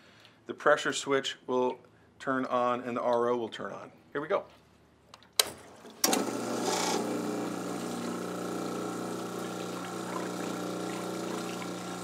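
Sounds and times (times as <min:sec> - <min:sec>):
water pump humming: 0:05.4 - 0:12.0.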